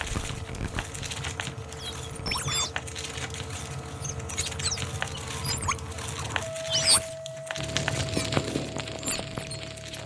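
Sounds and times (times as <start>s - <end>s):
crackling texture: 0.0s - 10.0s
high squeaky pitch glides: 4.0s - 7.3s.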